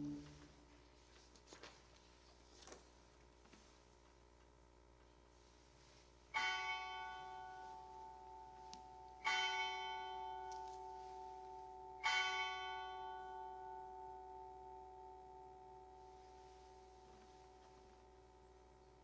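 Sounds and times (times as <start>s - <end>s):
bell ringing: 0.0s - 0.4s, 6.4s - 16.5s.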